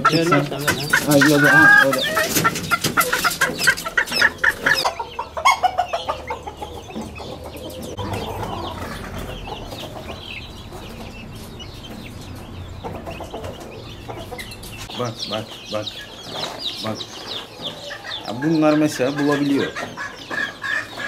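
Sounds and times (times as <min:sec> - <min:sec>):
chickens clucking: 0:00.0 - 0:21.0.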